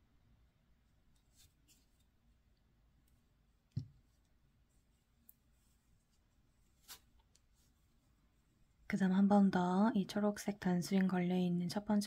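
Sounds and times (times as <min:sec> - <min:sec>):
yarn rustling: 0:04.0 - 0:08.6.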